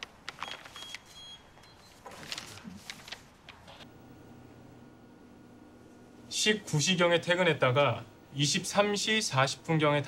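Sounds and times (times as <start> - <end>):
paper envelope crinkling: 0.0 - 1.2, 1.9 - 3.4.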